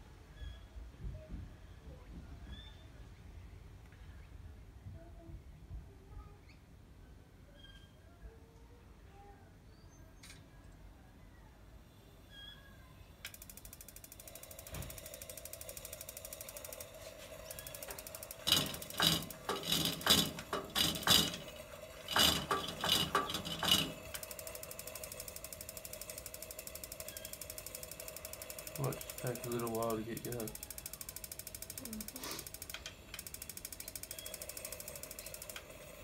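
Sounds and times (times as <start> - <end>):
lantern pump ticking: 13.2 - 36.0
mechanical pump strokes: 13.3 - 36.0.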